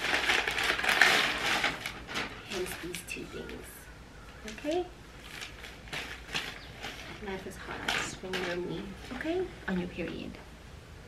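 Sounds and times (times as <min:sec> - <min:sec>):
plastic packaging crinkling: 0:00.0 - 0:10.2.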